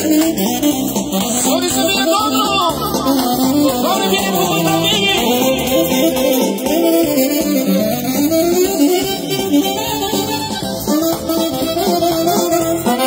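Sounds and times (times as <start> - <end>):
live band playing dance music: 0.0 - 13.0.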